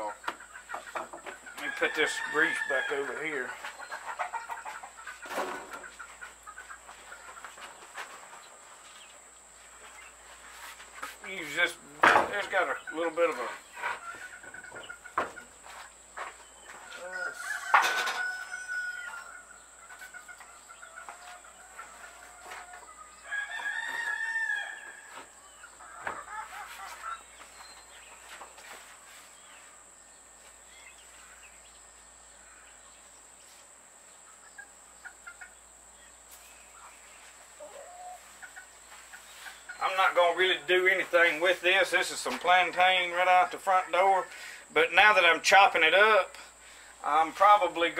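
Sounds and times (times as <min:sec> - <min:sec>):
chickens calling: 0:00.0 - 0:47.9
rooster crowing: 0:01.6 - 0:03.4, 0:16.9 - 0:19.6, 0:20.6 - 0:25.3.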